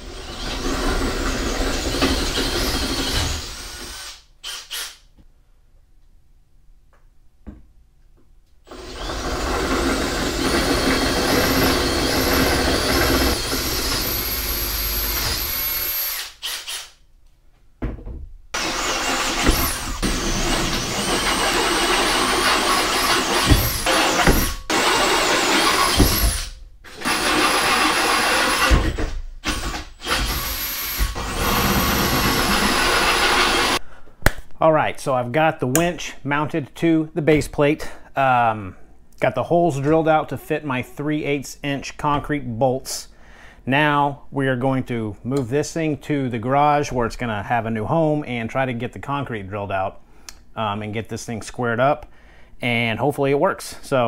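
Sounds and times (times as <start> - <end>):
cordless drill whining: 0.0 - 5.0, 8.7 - 17.0, 18.6 - 33.8.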